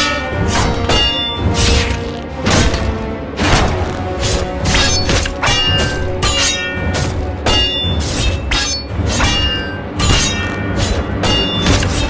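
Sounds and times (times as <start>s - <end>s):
dramatic background music: 0.0s - 12.0s
metal clanging on metal: 4.6s - 12.0s.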